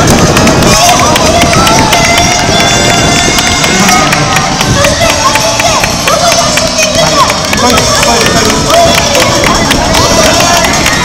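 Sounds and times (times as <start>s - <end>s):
crowd noise: 0.0s - 11.0s
spectators clapping: 0.0s - 11.0s.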